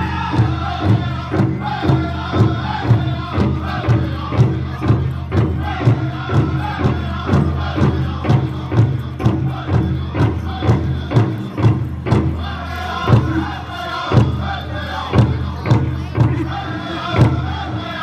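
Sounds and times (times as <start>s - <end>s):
big drum steady beat: 0.0s - 18.0s
high-pitched group singing: 0.0s - 18.0s.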